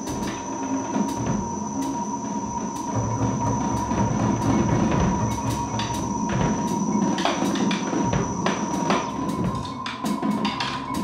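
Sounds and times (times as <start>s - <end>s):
drums: 0.0s - 11.0s
steady high tones: 0.0s - 11.0s
synthesizer: 0.0s - 11.0s.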